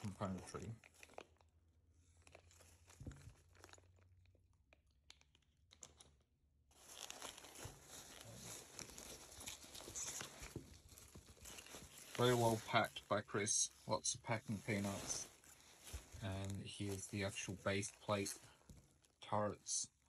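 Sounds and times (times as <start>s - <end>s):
packing peanuts and bubble wrap rustling: 0.0s - 20.0s.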